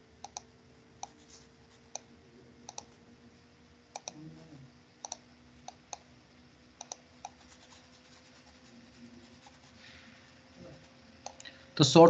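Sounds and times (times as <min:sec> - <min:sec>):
computer mouse clicking: 0:00.2 - 0:03.0, 0:03.9 - 0:04.2, 0:05.0 - 0:06.1, 0:06.8 - 0:08.7, 0:11.2 - 0:11.5.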